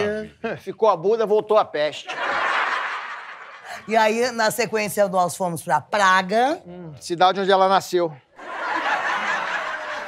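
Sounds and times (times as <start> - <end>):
audience laughing: 2.0 - 3.8, 8.4 - 10.0.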